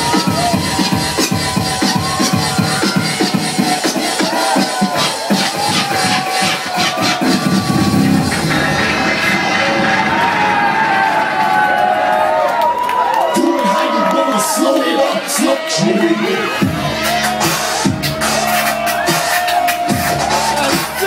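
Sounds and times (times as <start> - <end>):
crowd cheering: 0.0 - 21.0
electronic dance music: 0.0 - 21.0.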